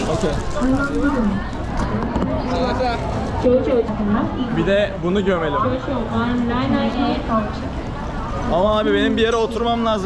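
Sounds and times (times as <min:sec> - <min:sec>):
people talking nearby: 0:00.0 - 0:10.0
street crowd hubbub: 0:00.0 - 0:10.0.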